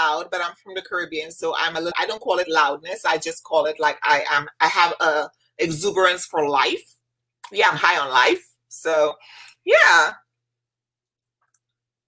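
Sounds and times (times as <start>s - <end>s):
woman's voice: 0.0s - 10.2s.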